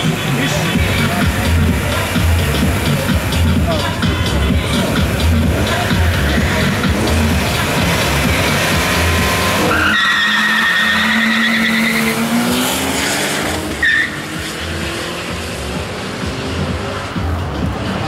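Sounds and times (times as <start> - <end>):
music with steady beat: 0.0 - 9.7, 12.3 - 18.0
car engines revving: 0.0 - 18.0
tyres squealing: 3.8 - 14.7.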